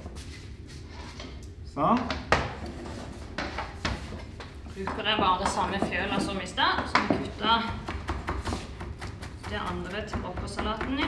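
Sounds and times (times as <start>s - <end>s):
knife chopping herbs on board: 6.8s - 11.0s.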